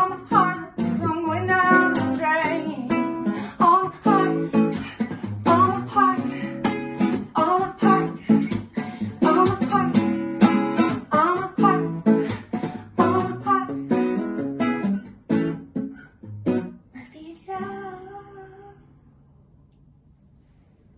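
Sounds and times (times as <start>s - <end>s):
acoustic guitar strumming: 0.0s - 16.8s.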